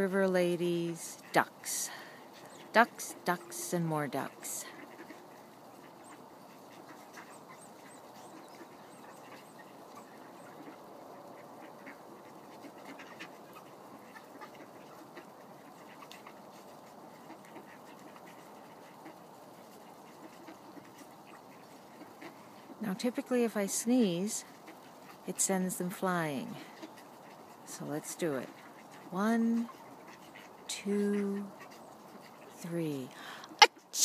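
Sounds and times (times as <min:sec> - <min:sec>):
ducks quacking softly: 0:00.0 - 0:34.0.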